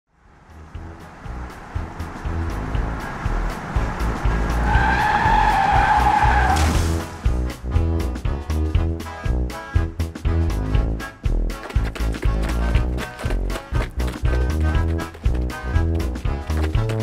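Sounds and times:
upbeat music with steady beat: 7.3 - 17.0.

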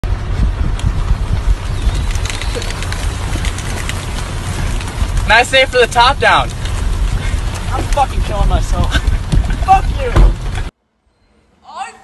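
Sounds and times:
low rumble: 0.0 - 10.7
rain falling: 1.5 - 10.7
light ticks: 2.0 - 5.0.

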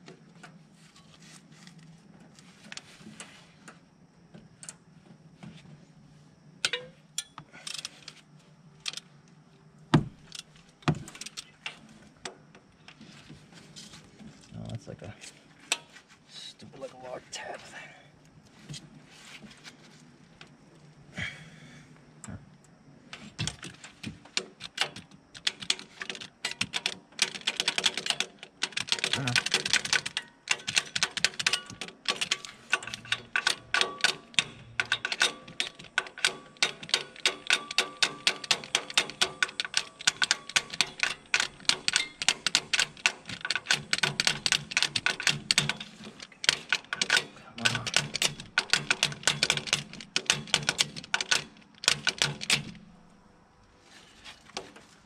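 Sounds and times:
ratchet wrench clicking: 28.9 - 52.8.

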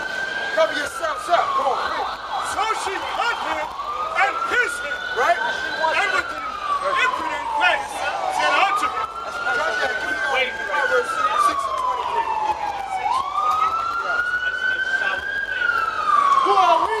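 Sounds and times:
emergency siren wailing: 0.0 - 17.0
people's voices: 0.0 - 17.0.

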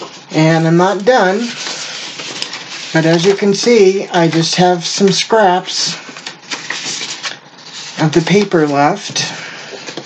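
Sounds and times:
paper rustling and crackling: 0.0 - 10.0.

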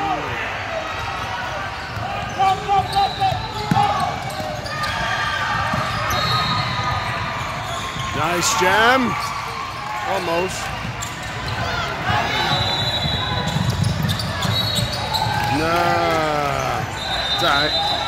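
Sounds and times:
sneakers squeaking: 1.0 - 15.6.

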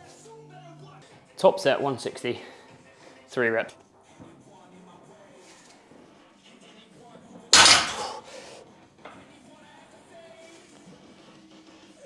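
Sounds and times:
barbell impact on floor: 7.6 - 8.2
metallic rattle of plates: 7.6 - 8.2.

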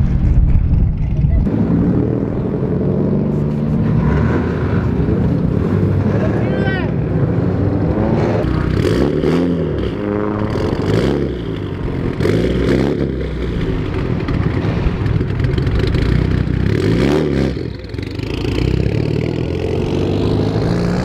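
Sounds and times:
car engines revving: 0.0 - 21.0.

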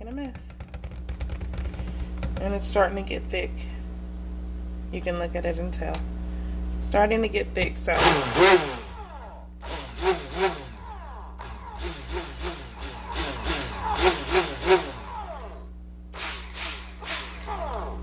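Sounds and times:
stick blender motor running: 8.0 - 18.0.

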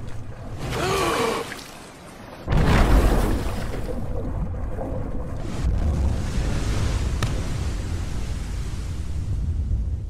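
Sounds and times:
underwater churning water: 0.0 - 9.9
deep rumble: 3.9 - 10.0.

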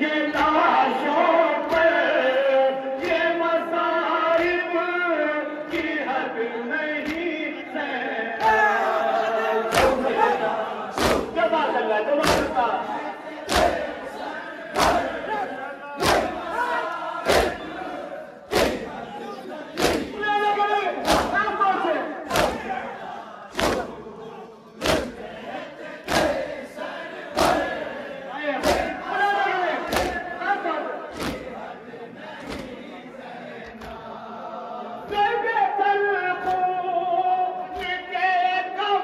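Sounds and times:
crowd chanting a lament: 0.0 - 39.0
hands slapping chests in unison: 1.6 - 2.1, 7.0 - 7.3, 9.7 - 11.6, 12.2 - 24.1, 24.8 - 33.0, 33.6 - 34.2, 36.4 - 36.7.

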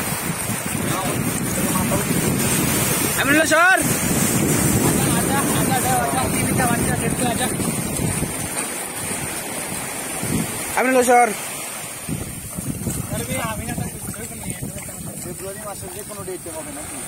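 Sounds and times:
surf on a beach: 0.0 - 17.0
wind buffeting microphone: 0.0 - 17.0.

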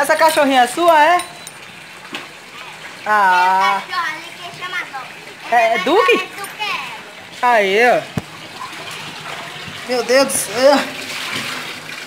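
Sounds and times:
water running: 0.0 - 12.0.

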